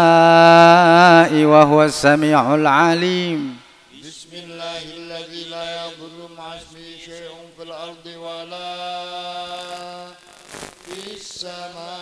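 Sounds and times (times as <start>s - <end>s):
man chanting prayer: 0.0s - 10.2s, 10.9s - 12.0s.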